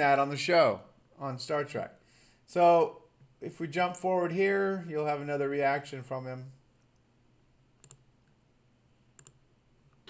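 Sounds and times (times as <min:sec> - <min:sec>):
computer mouse click: 0:07.8 - 0:08.1, 0:09.2 - 0:09.4.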